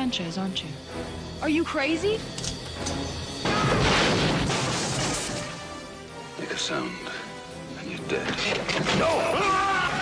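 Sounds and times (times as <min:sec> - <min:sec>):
trailer music: 0:00.0 - 0:10.0
loud crash: 0:03.4 - 0:05.4.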